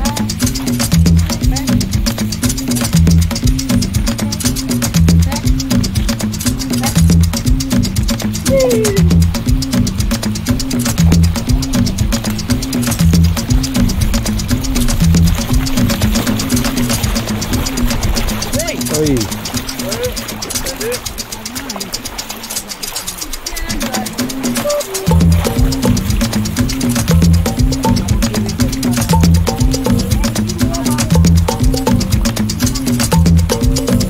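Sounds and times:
busy percussion pattern: 0.0 - 34.0
repeating bass line: 0.0 - 34.0.

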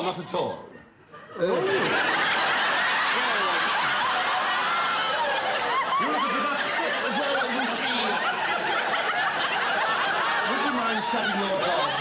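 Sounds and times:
audience laughing: 1.2 - 12.0.

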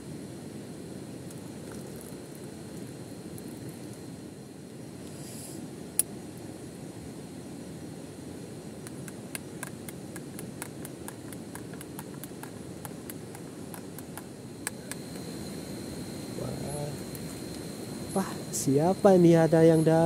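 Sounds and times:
low rushing background: 5.6 - 20.0.

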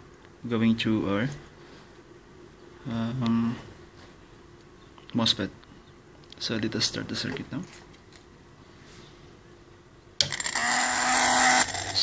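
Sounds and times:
small motor whirring: 10.2 - 12.0.

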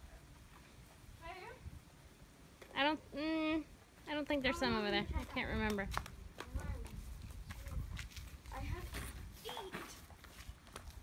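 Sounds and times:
flip-flop footsteps on concrete: 5.1 - 11.0.

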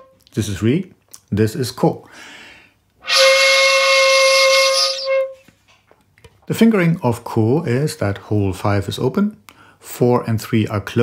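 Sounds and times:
faint breath: 2.1 - 2.8, 9.5 - 9.8
shakuhachi held note: 3.0 - 5.4.

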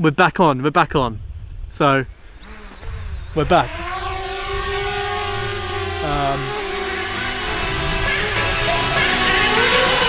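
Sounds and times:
drone propellers whining: 2.1 - 10.0.

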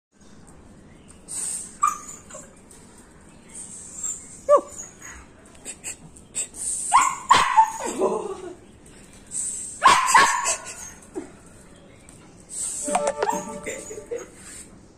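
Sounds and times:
dog barking and yipping: 6.9 - 8.0, 9.8 - 11.0, 13.1 - 14.3.

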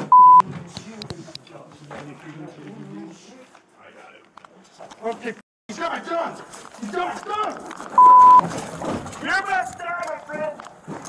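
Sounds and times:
censor bleep: 0.0 - 0.4, 8.0 - 8.4.

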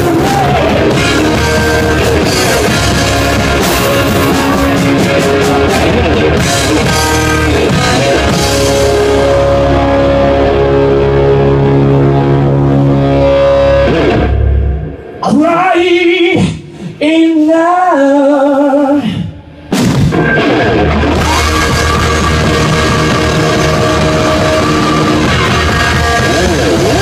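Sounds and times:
drum kit with cymbal hits: 0.0 - 10.8, 19.7 - 27.0
electric guitar: 0.0 - 16.9, 18.6 - 27.0.

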